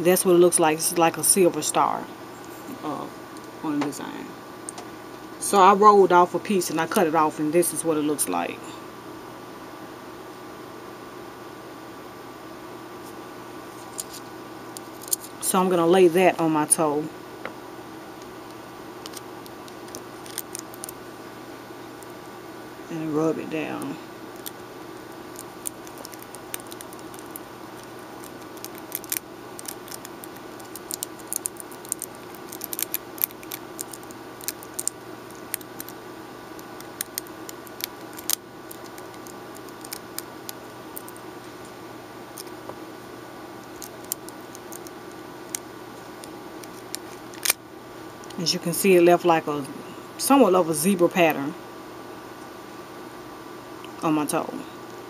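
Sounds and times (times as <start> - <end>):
faint electrical hum: 0.0 - 55.0
foil crinkling and clicking: 14.8 - 15.4, 19.0 - 21.0, 24.3 - 41.2, 43.6 - 47.6.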